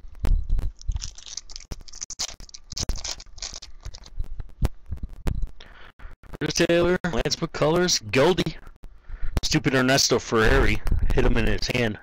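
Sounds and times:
foil wrapper crinkling and tearing: 0:00.7 - 0:04.2.

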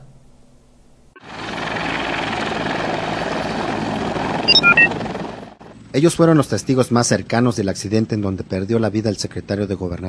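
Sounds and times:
helicopter running: 0:01.2 - 0:05.9.

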